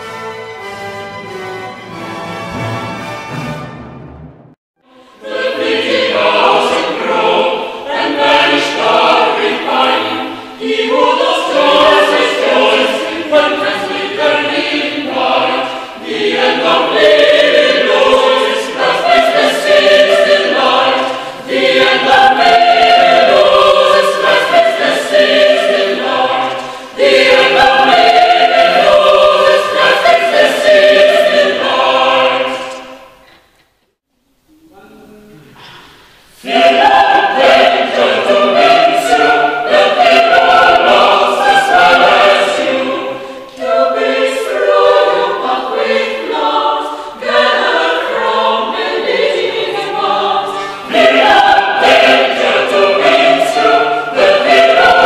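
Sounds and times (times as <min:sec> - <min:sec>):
mixed choir singing: 0:04.8 - 0:33.3, 0:35.6 - 0:55.0.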